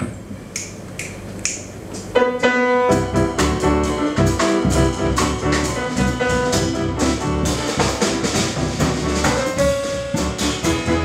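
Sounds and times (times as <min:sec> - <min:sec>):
finger snaps: 0:00.5 - 0:02.1
grand piano chord: 0:02.2 - 0:11.0.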